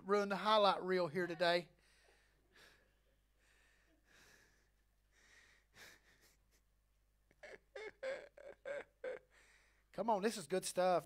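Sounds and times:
man laughing: 0:07.3 - 0:09.3.

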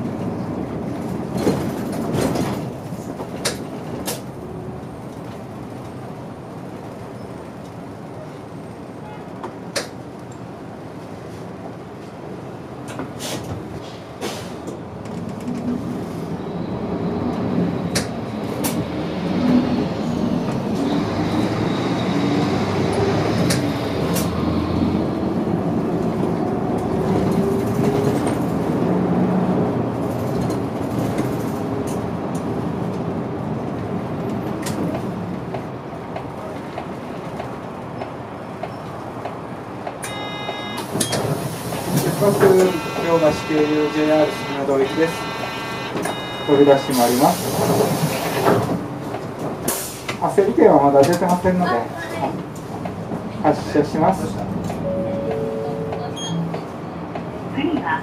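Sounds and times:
bus engine accelerating: 0:00.0 - 0:58.0.

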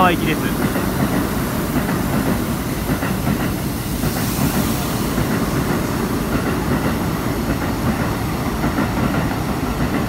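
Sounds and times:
bright hiss: 0:00.0 - 0:08.4
train wheels on rails: 0:00.0 - 0:10.0.

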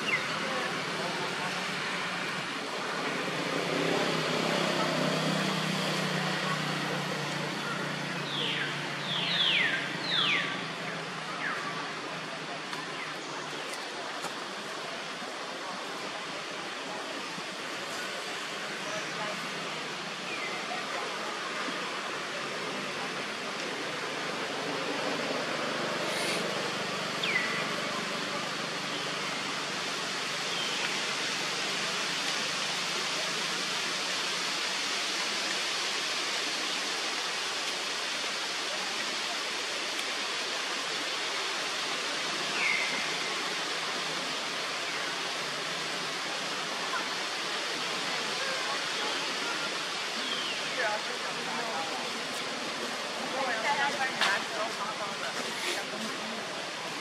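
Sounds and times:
forest ambience hiss: 0:00.0 - 0:57.0.

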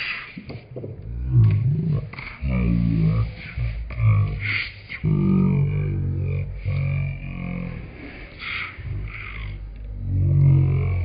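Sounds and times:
low wordless vocal sounds: 0:00.0 - 0:11.0.

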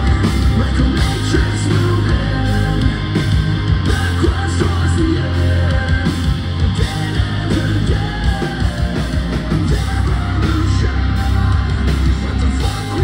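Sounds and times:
live heavy metal band: 0:00.0 - 0:13.0.

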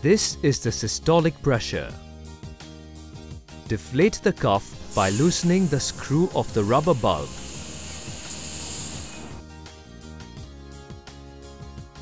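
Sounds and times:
soft background music: 0:00.0 - 0:12.0
air hissing out of cuff: 0:04.7 - 0:09.4.

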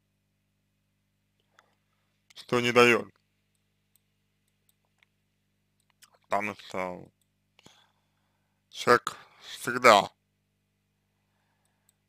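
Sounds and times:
faint low hum: 0:00.0 - 0:12.0
small clicks: 0:03.1 - 0:05.2, 0:05.8 - 0:06.3.

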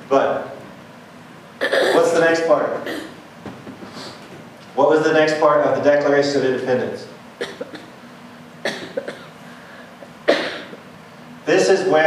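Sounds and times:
person coughing: 0:01.6 - 0:02.2, 0:02.8 - 0:03.2, 0:07.4 - 0:07.9, 0:08.6 - 0:09.4, 0:10.3 - 0:10.8.

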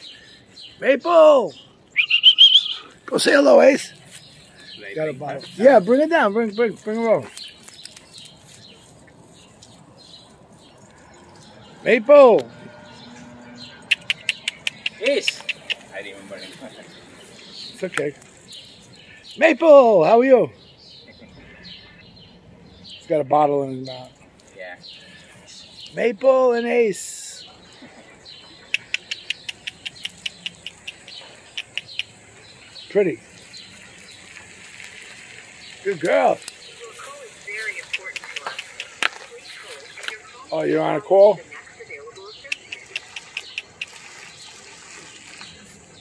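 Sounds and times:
faint bird chirps: 0:01.9 - 0:02.9
dog claws clicking on concrete: 0:07.2 - 0:08.4.

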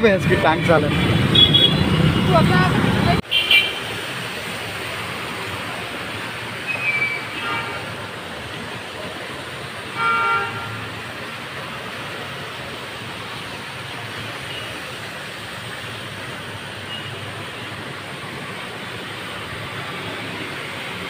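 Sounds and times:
street noise: 0:00.0 - 0:21.0
vehicle horn honks: 0:00.6 - 0:02.4, 0:10.0 - 0:10.8.

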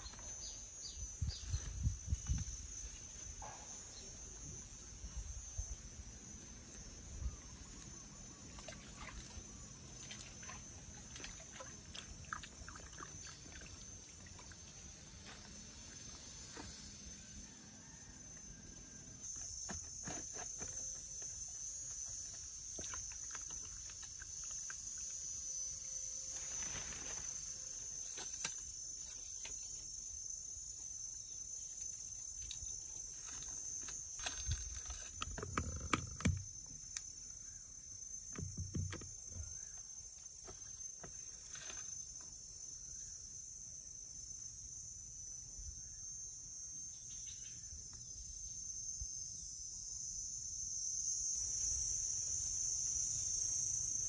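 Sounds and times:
high-pitched insect chorus: 0:00.0 - 0:54.0.

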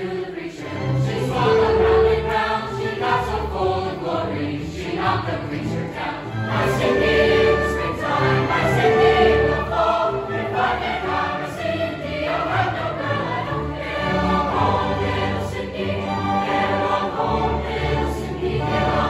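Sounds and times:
mixed choir singing: 0:00.0 - 0:19.0.

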